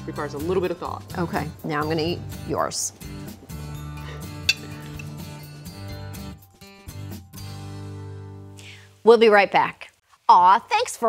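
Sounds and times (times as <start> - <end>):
background music with held notes: 0.0 - 9.0
metal fork clinking on plate: 4.4 - 5.2.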